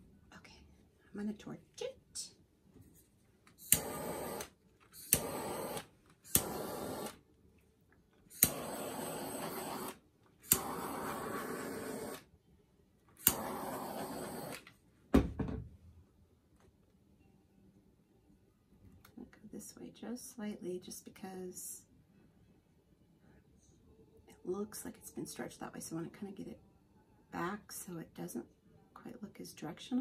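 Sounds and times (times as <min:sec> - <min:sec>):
torch flame hiss: 0:03.6 - 0:07.2, 0:08.3 - 0:12.3, 0:13.2 - 0:14.7
torch igniter click: 0:03.6 - 0:07.2, 0:08.4 - 0:12.2, 0:13.2 - 0:14.6
knock: 0:15.1 - 0:15.7.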